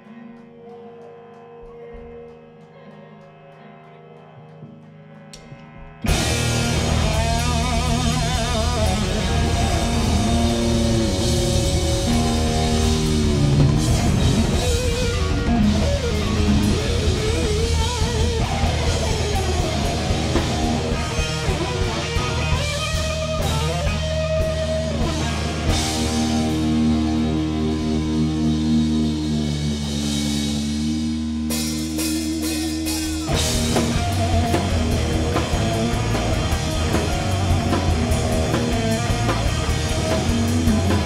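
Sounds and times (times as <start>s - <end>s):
electric guitar lead line: 0.0s - 41.0s
drum kit: 5.3s - 41.0s
bass guitar: 5.4s - 41.0s.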